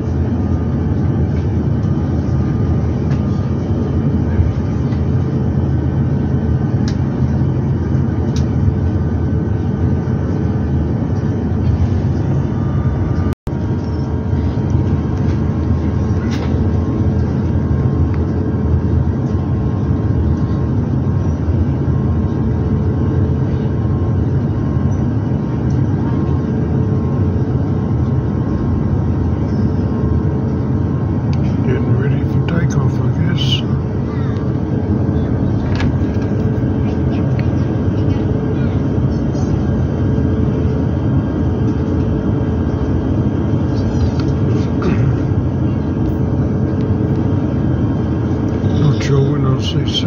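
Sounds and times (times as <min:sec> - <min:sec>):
airliner cabin rumble: 0:00.0 - 0:50.0.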